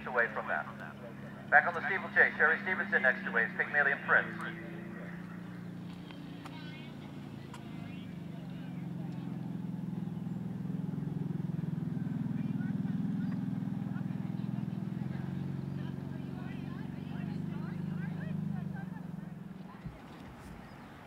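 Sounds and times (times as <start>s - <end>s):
vehicle engine humming: 0.0s - 21.0s.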